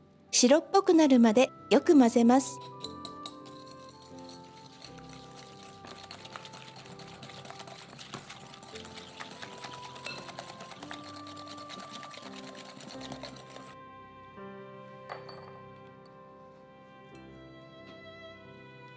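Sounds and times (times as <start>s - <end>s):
background music: 0.0s - 18.9s
whisk ticking against glass bowl: 2.4s - 13.8s.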